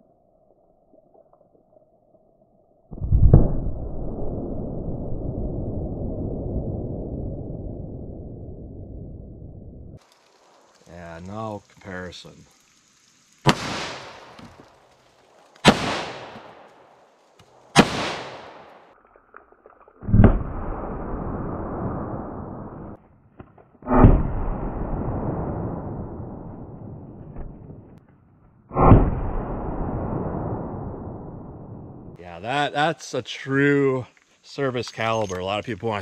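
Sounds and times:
slowed-down gunshot booms: 2.9s - 8.5s, 13.5s - 14.6s, 15.6s - 16.7s, 17.7s - 18.8s, 20.1s - 23.0s, 23.8s - 28.0s, 28.6s - 32.2s.

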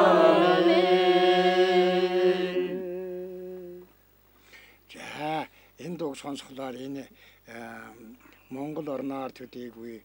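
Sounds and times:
low overtone singing voice: 0.0s - 3.9s.

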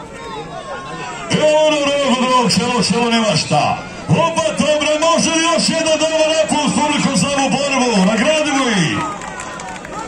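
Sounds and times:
background crowd noise: 0.0s - 10.0s
man talking: 1.3s - 9.0s.

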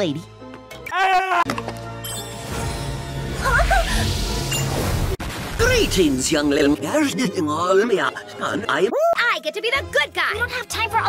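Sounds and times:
cartoon background music: 5.7s - 11.0s.

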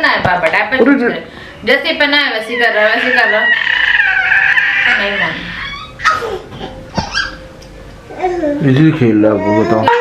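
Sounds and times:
woman's voice: 0.0s - 3.9s, 4.8s - 5.9s
child whining: 2.5s - 7.4s, 8.1s - 10.0s.

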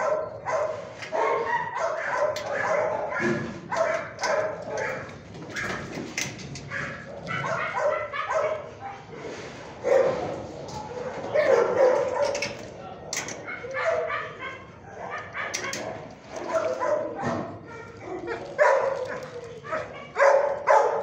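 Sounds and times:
dog yipping whining and barking: 0.0s - 4.8s.

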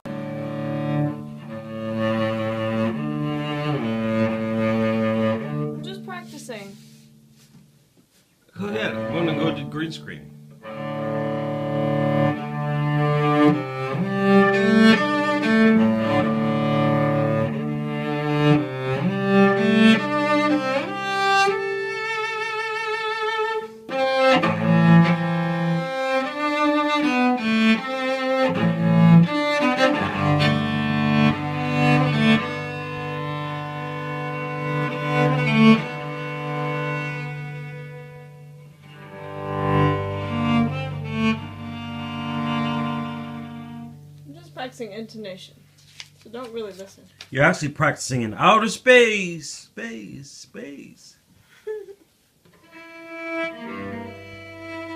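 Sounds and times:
bowed cello melody: 0.0s - 7.4s, 8.6s - 44.6s, 52.5s - 54.9s.

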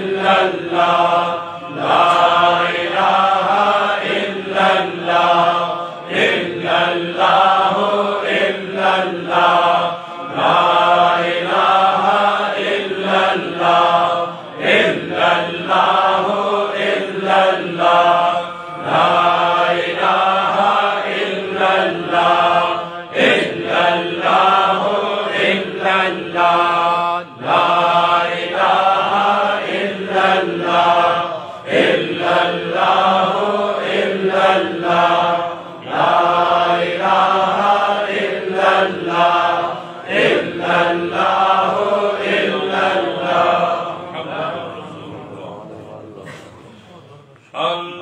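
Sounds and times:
man chanting melodically: 41.8s - 48.0s.

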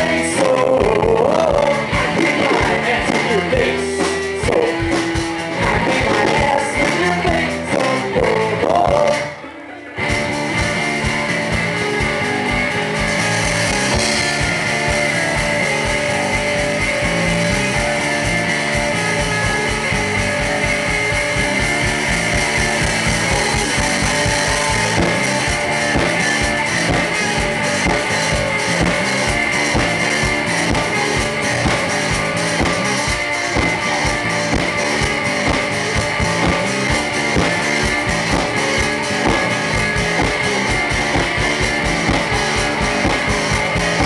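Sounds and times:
bass guitar: 0.0s - 44.0s
drums: 0.0s - 44.0s
electric guitar: 0.0s - 44.0s.

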